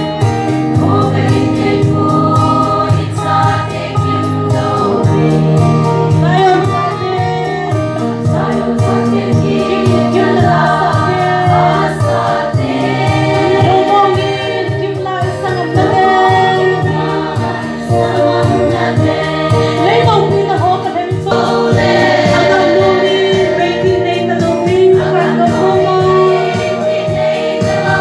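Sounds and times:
rhythmic low accompaniment: 0.0s - 28.0s
women's choir singing a hymn: 0.7s - 28.0s.

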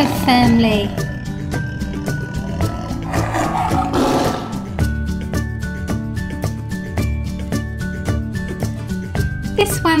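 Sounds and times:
background music with steady beat: 0.6s - 10.0s
tiger roar sound effect: 0.7s - 4.9s.

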